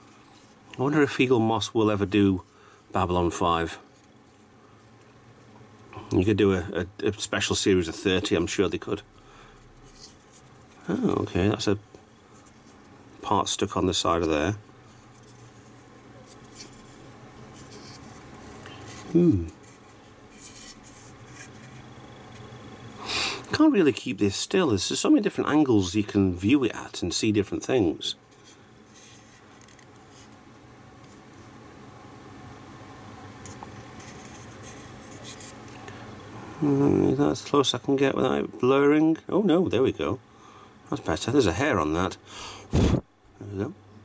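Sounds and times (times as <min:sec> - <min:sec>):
low steady hum: 0:00.0 - 0:44.0.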